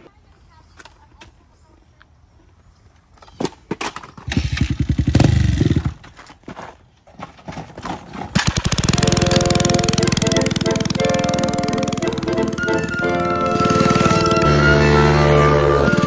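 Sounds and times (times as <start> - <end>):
dirt bike engine revving: 4.4 - 6.0, 8.4 - 16.0
music with steady beat: 9.4 - 16.0.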